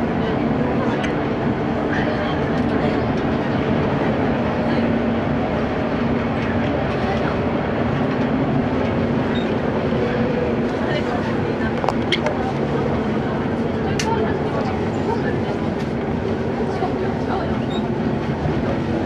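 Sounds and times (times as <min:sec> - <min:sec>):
train wheels rumbling on rail: 0:00.0 - 0:19.0.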